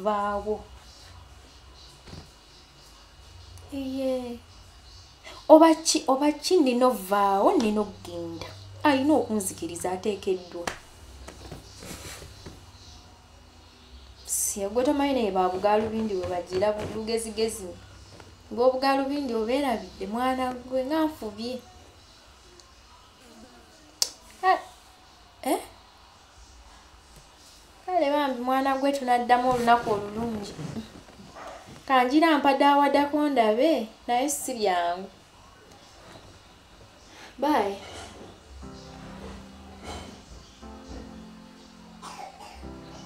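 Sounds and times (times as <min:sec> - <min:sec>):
faint voice: 0:21.7 - 0:24.4
held keyboard chords: 0:38.5 - 0:43.0
cough-like throat sound: 0:42.0 - 0:42.7.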